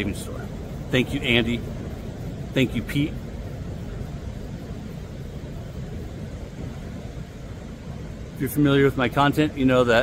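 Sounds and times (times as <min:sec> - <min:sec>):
ocean surf on rocks: 0:00.0 - 0:10.0.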